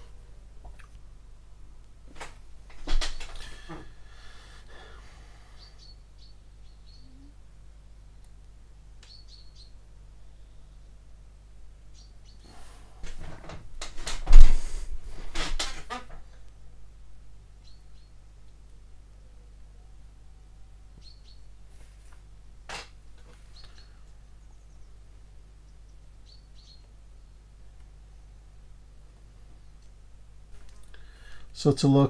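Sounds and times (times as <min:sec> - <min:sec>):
faint high bird chirps: 0:05.4 - 0:07.4, 0:09.0 - 0:11.0, 0:11.9 - 0:12.5, 0:17.6 - 0:18.2, 0:19.2 - 0:21.6, 0:23.4 - 0:28.5
thump: 0:14.2 - 0:14.8.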